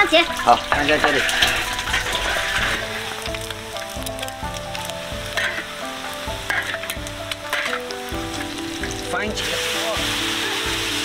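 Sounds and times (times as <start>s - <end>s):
eggs sizzling in hot oil: 0.0s - 11.0s
metal spatula scraping wok: 0.3s - 11.0s.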